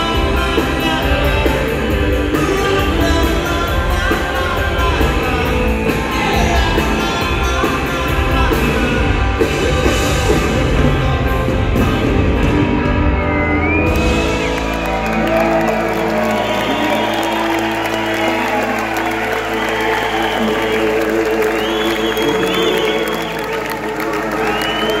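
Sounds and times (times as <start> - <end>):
drums and cymbals: 0.0 - 14.9
crowd cheering and whooping: 12.5 - 25.0.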